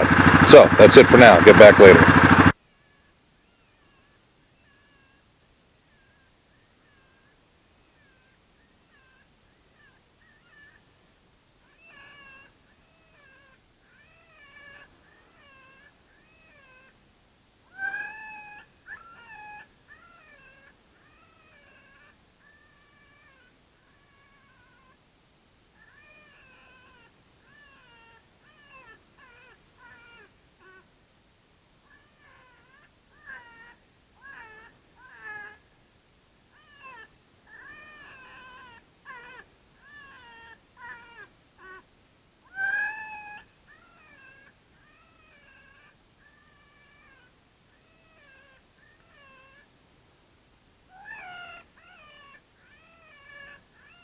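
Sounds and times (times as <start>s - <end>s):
electronic animal distress cries: 0.0s - 2.5s.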